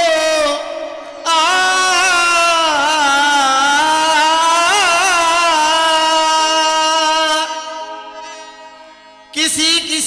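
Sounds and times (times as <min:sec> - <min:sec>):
man singing a long note: 0:00.0 - 0:08.2.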